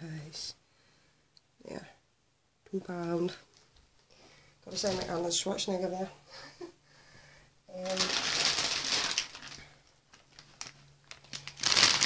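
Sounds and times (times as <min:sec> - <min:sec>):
plastic packaging crinkling: 0:07.7 - 0:12.0
plastic packaging clicks: 0:07.8 - 0:12.0.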